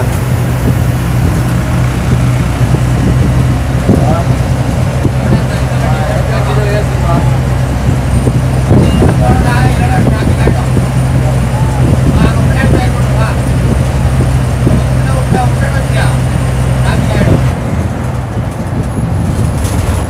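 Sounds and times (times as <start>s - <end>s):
bus engine drone: 0.0s - 20.0s
road noise: 0.0s - 20.0s.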